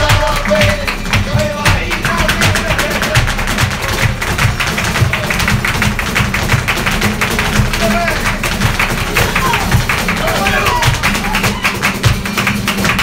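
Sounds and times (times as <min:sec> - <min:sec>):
dance footwork clicks: 0:00.0 - 0:13.0
guitars strumming: 0:00.0 - 0:13.0
hand-clapping: 0:00.0 - 0:13.0
performers shouting: 0:07.8 - 0:12.0.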